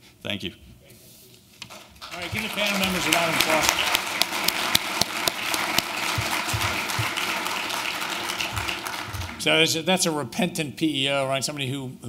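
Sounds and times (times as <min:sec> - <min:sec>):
audience applauding: 0:01.7 - 0:09.8.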